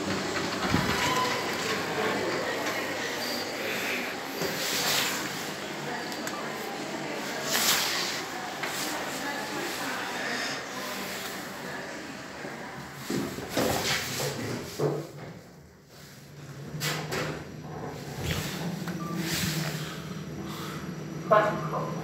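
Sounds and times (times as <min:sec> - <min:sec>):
lift doors sliding shut: 0:00.0 - 0:06.3, 0:16.4 - 0:20.1
lift motor humming: 0:00.0 - 0:12.9, 0:16.4 - 0:22.0.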